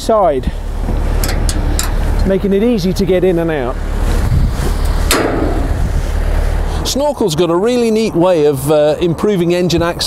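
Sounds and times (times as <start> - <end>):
wind buffeting microphone: 0.0 - 10.0
metal gate knock: 5.1 - 5.7.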